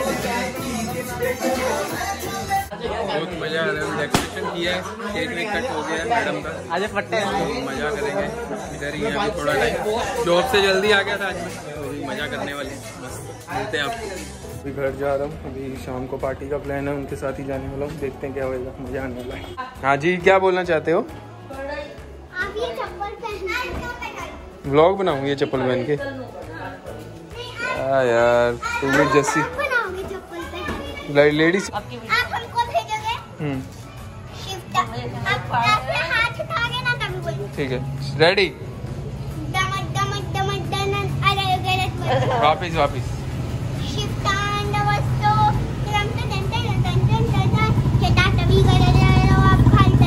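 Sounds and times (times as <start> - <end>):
background music: 0.0 - 50.0
girl speaking: 22.3 - 24.4, 29.5 - 31.0, 32.0 - 33.4, 34.3 - 37.5, 39.4 - 42.3, 43.8 - 50.0.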